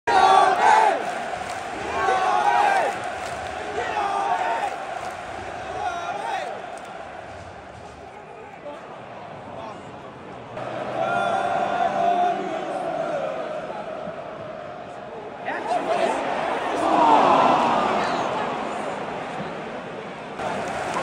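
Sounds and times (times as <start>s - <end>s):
stadium crowd shouting: 0.0s - 21.0s.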